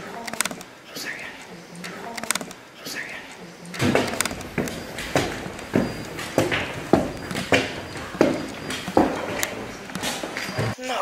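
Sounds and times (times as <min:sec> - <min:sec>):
footsteps on hard floor: 0:03.6 - 0:10.8.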